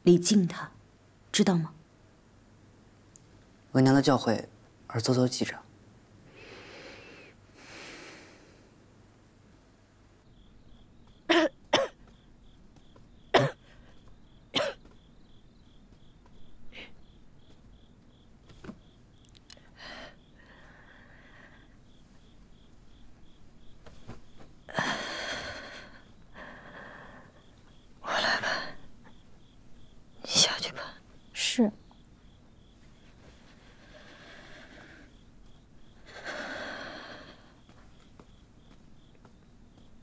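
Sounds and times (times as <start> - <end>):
crickets chirping: 0.1 - 40.0
person coughing: 11.3 - 12.0, 13.3 - 13.7, 14.6 - 14.8
woman whispering hoarsely: 30.2 - 31.0.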